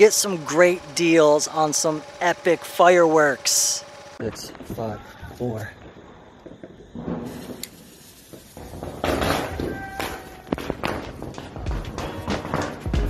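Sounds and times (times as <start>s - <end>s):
firework rushing: 5.6s - 11.7s
firework bangs and pops: 5.8s - 13.0s.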